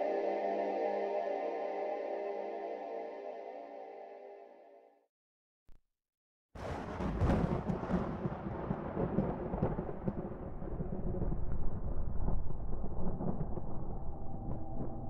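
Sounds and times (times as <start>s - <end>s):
steady low tones: 0.0s - 4.8s
deep rumbling cinematic intro: 9.6s - 15.0s.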